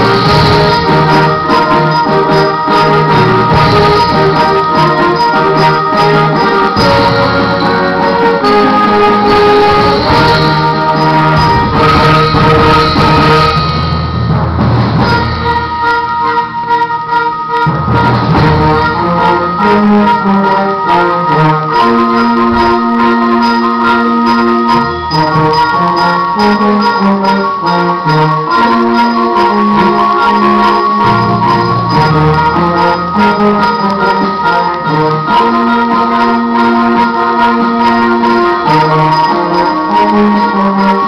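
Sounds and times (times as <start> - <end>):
short percussion strikes: 0.0 - 16.8, 24.2 - 36.3
concert band playing: 0.0 - 41.0.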